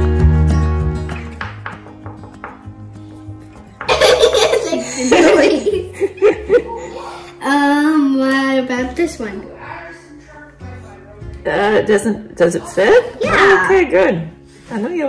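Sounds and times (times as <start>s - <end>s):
soft background music: 0.0s - 15.0s
girl laughing: 3.9s - 7.2s.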